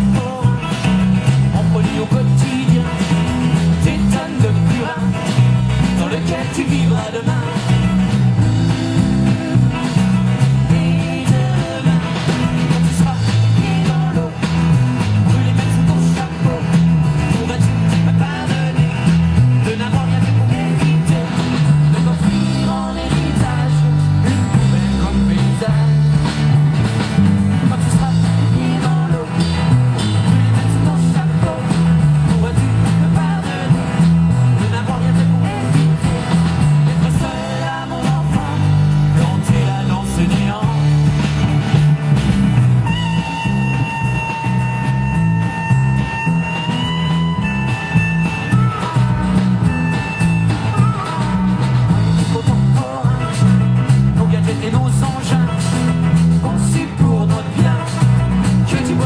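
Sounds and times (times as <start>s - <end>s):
rock band playing: 0.0s - 59.0s
harmonica playing: 42.8s - 51.5s.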